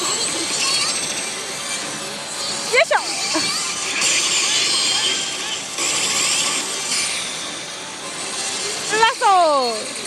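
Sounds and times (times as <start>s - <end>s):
noisy gaming hall din: 0.0s - 10.0s
slot machine sound effects: 0.0s - 10.0s.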